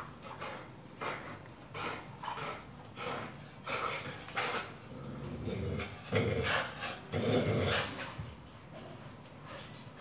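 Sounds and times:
dog growling: 4.8 - 8.0.

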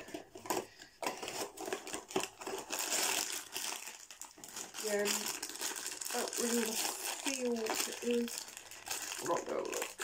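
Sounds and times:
foil bag crinkling: 1.2 - 10.0.

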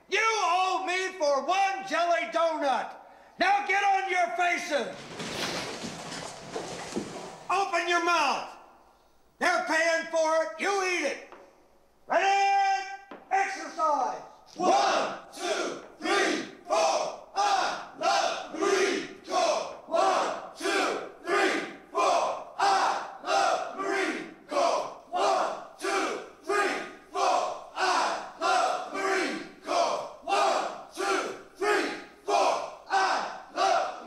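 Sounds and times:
men shouting in unison: 22.6 - 34.0.

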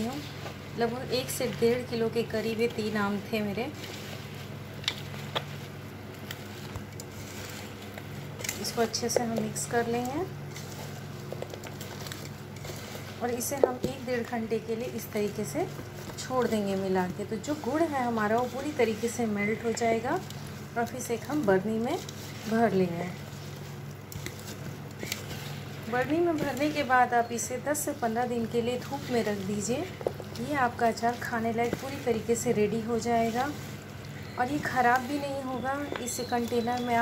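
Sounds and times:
steady low hum: 0.0 - 37.0
wet squishing of food: 0.0 - 37.0.

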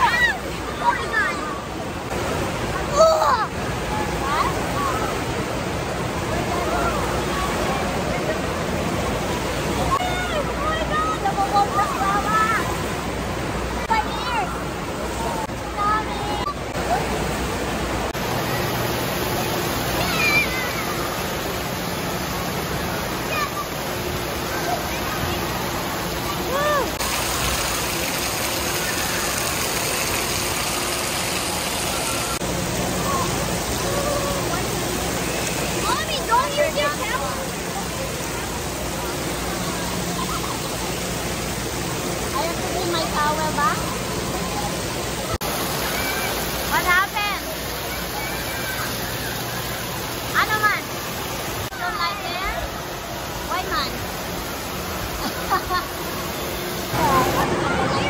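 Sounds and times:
children shouting: 0.0 - 1.6, 19.9 - 21.2, 45.6 - 46.6, 47.9 - 49.8
water spraying onto wet floor: 18.1 - 57.6
hubbub of voices: 31.4 - 58.0.

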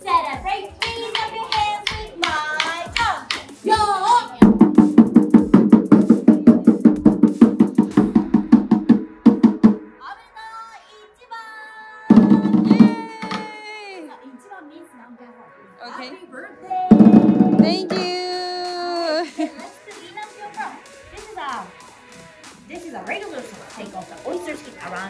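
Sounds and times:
taiko drum roll: 16.9 - 18.0.

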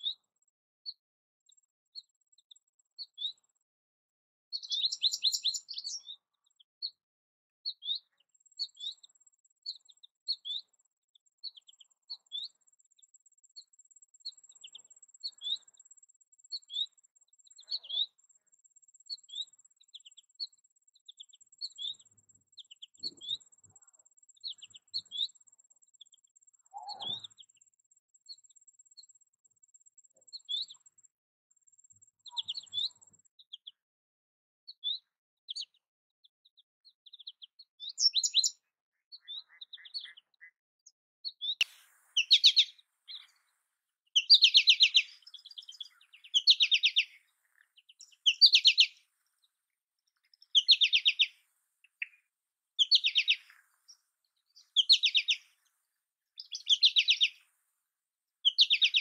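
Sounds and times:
bird short high chirps: 4.5 - 6.2, 17.6 - 18.1, 21.6 - 23.8, 26.7 - 27.5, 32.2 - 33.0, 37.1 - 40.5, 41.2 - 43.5, 44.2 - 49.0, 50.4 - 51.4, 52.8 - 53.6, 54.6 - 55.6, 56.4 - 57.4, 58.4 - 59.0.

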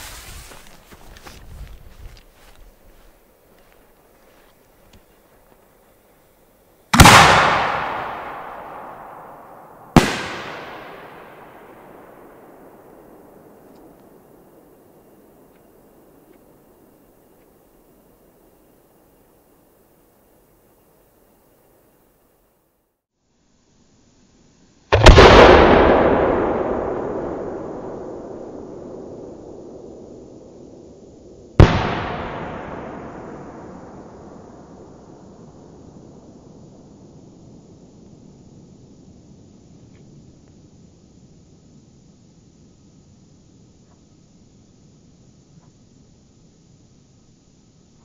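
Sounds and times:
firework bangs echoing: 7.0 - 13.3, 31.6 - 34.4.

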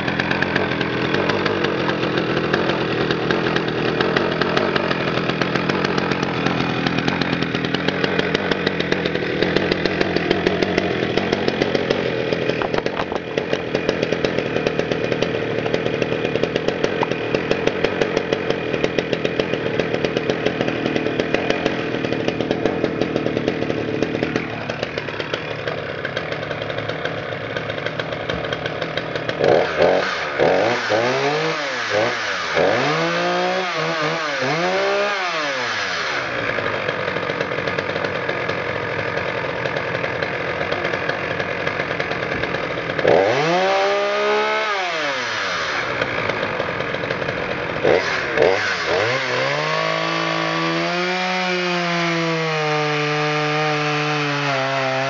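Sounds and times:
chainsaw cutting log: 0.0 - 55.0
chainsaw idling and revving: 0.0 - 55.0.

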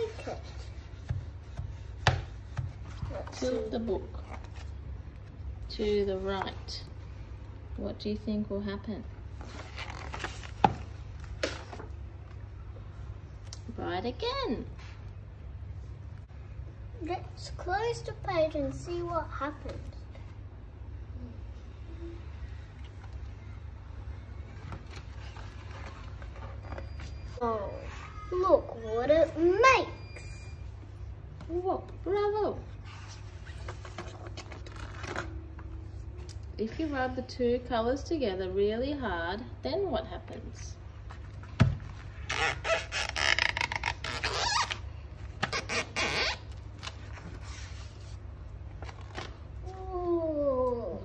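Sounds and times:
hand rubbing wet paint on paper: 0.0 - 3.6.

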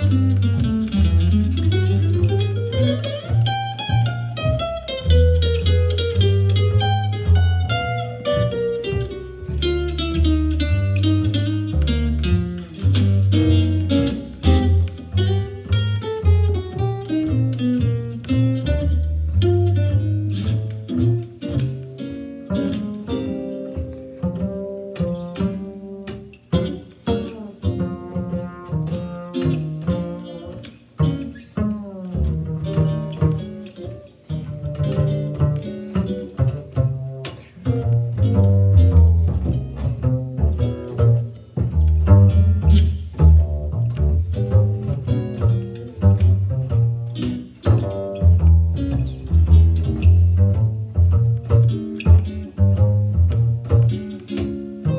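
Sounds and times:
jazz guitar: 0.0 - 54.9
plucked double bass: 0.0 - 54.9.

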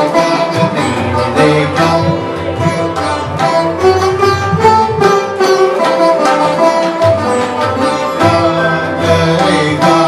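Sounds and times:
sarod plucked notes: 0.0 - 10.0
tabla: 0.0 - 10.0.

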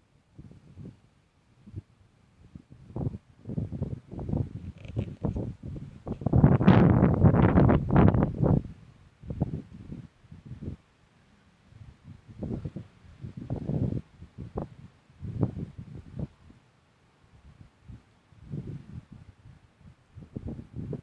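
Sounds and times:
wind buffeting microphone: 1.6 - 10.8, 11.8 - 16.6, 17.4 - 21.0.

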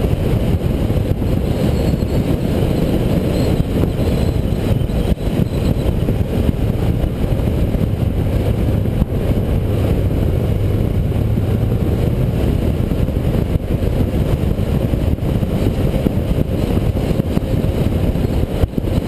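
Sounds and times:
motorcycle engine drone: 0.0 - 19.0
wind rush on microphone: 0.0 - 19.0.

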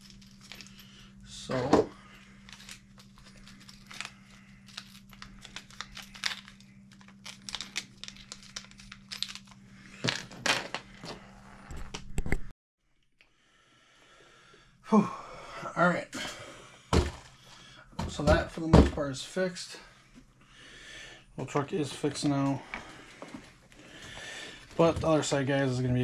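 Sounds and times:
steady low hum: 0.0 - 12.5, 13.4 - 26.0.

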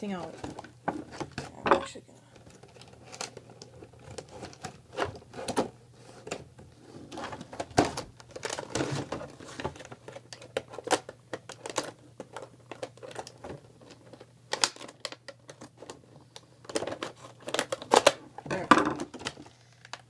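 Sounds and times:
plastic packaging crinkling: 2.3 - 6.4, 7.0 - 18.2, 19.0 - 20.0.

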